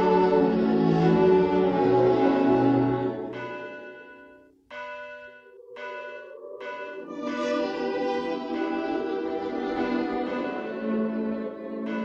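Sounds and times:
held music chord: 0.0 - 4.4, 6.4 - 12.0
bell-like struck notes: 3.2 - 12.0.

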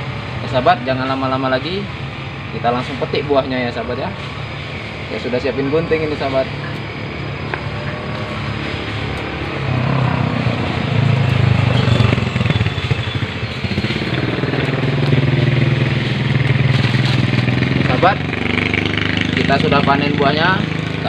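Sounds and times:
small engine running: 0.0 - 21.0.

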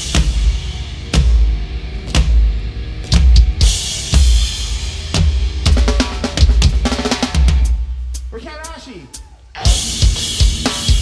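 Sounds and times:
distorted guitar and bass: 0.0 - 8.8, 9.5 - 11.0.

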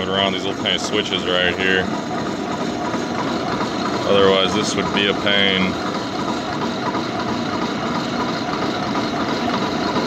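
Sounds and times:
milling machine cutting metal: 0.0 - 10.0.

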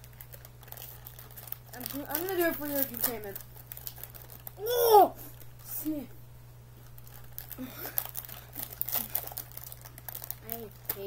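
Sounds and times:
plastic packet crinkling: 0.0 - 4.7, 6.8 - 11.0.

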